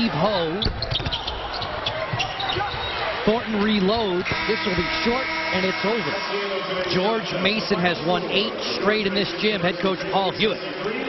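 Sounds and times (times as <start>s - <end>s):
crowd noise and voices: 0.0s - 11.0s.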